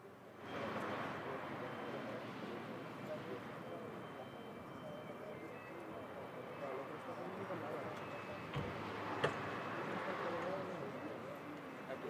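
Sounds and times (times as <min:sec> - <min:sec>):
faint background chatter: 0:00.0 - 0:12.0.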